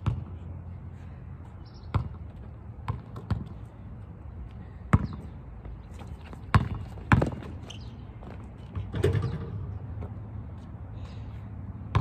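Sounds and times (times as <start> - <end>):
basketball bouncing on asphalt: 0.0 - 0.6, 1.4 - 10.8, 11.7 - 12.0.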